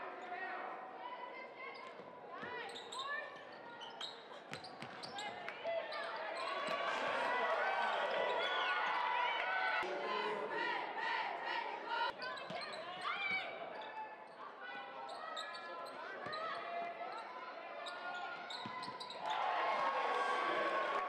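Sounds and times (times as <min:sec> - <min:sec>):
voices echoing in gym: 0:00.0 - 0:21.0
cheerleaders chanting: 0:06.5 - 0:12.2, 0:19.3 - 0:21.0.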